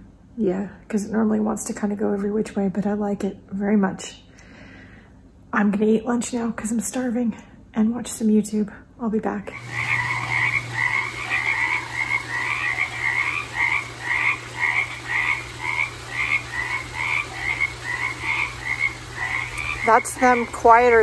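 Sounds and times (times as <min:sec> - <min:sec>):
frogs croaking: 0:09.5 - 0:21.0.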